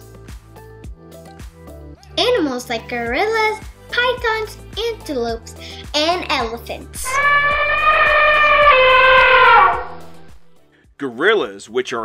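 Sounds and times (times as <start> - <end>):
held electric guitar note: 7.0 - 10.4.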